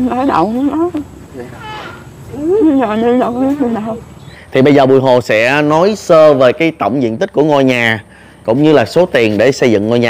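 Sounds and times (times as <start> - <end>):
woman speaking: 0.0 - 1.1, 2.3 - 4.1
high voice-like call: 1.4 - 2.7.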